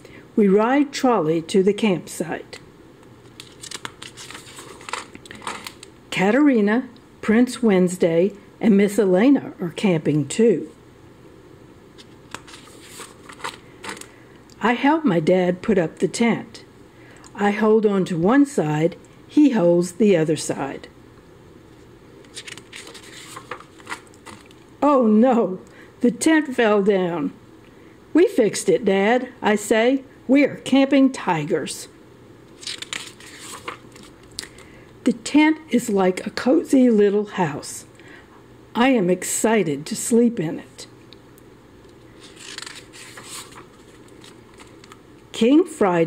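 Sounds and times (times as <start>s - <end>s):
faint steady hum: 0.0s - 46.0s
book page turning: 3.2s - 5.9s, 12.0s - 14.1s, 22.2s - 24.6s, 32.5s - 34.6s, 42.2s - 45.0s.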